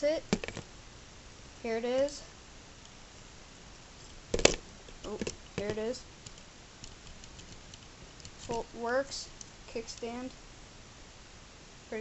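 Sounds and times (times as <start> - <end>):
handling clicks and knocks: 0.2 - 0.7, 4.0 - 8.6.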